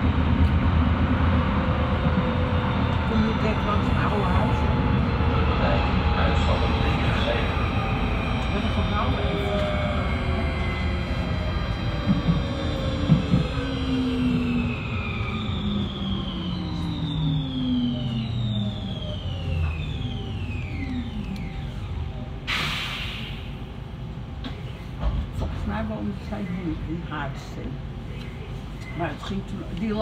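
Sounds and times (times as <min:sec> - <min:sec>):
train wheels rumbling: 0:00.0 - 0:21.8
electric train drive whine: 0:00.0 - 0:30.0.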